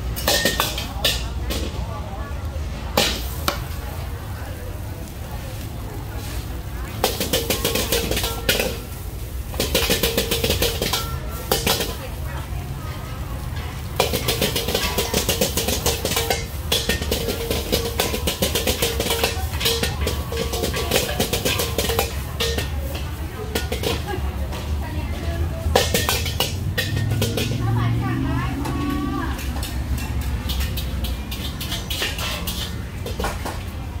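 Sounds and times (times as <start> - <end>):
gas burner rumble: 0.0 - 34.0
metal ladle scraping in a wok: 6.2 - 12.3, 13.4 - 33.8.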